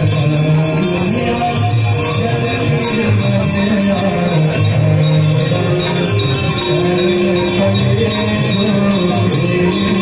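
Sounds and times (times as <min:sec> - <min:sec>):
devotional music and singing: 0:00.0 - 0:10.0
hand bells jangling: 0:00.0 - 0:10.0.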